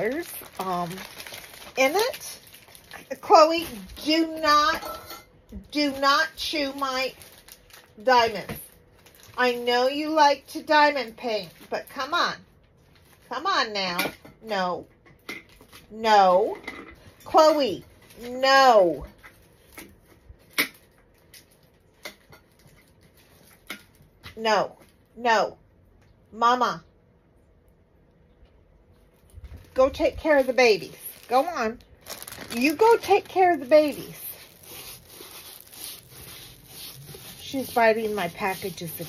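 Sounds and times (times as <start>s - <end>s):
rubbing and rustling of canvas: 32.1s - 39.0s.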